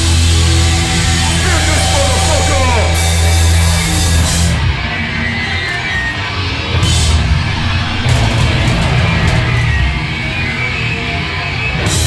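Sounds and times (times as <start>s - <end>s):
heavy band playing live: 0.0s - 12.0s
cymbal crashes: 0.1s - 4.7s.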